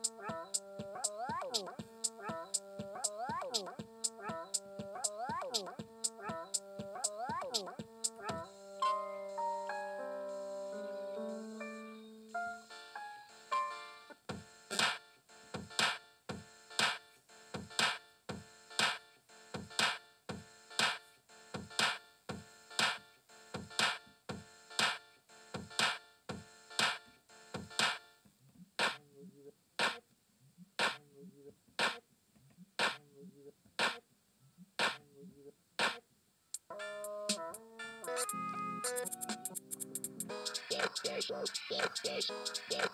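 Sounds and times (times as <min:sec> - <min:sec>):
synthesizer electronic music: 0:00.0 - 0:28.0, 0:36.6 - 0:42.9.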